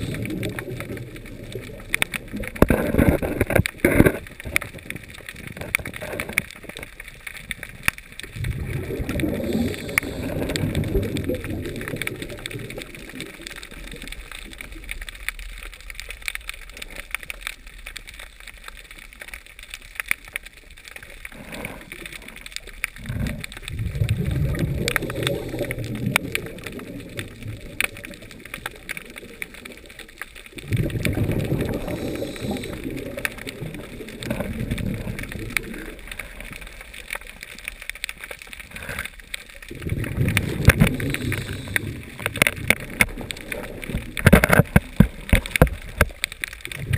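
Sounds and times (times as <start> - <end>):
underwater regulator bubbles rushing: 0.0 - 6.4, 7.5 - 14.8, 23.0 - 36.7, 39.6 - 46.9
crackle of sharp clicks: 0.0 - 46.9.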